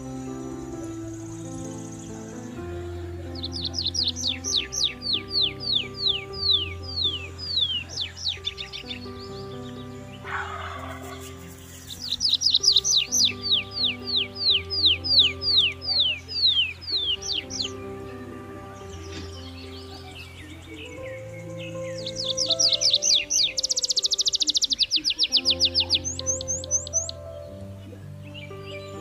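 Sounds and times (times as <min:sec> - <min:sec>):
background music of sustained tones: 0:00.0 - 0:29.0.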